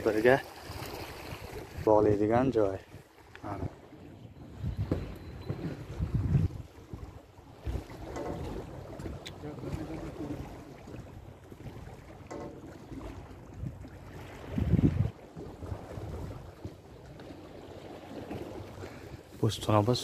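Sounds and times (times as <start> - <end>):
wind buffeting microphone: 0.5 - 20.0.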